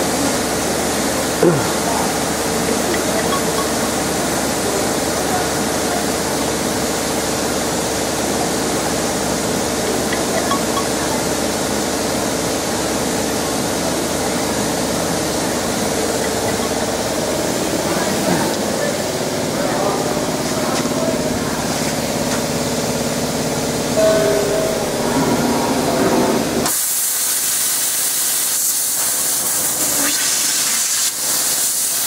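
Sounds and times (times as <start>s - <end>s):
constant machine hum: 0.0s - 27.0s
factory machinery rushing: 0.0s - 27.6s.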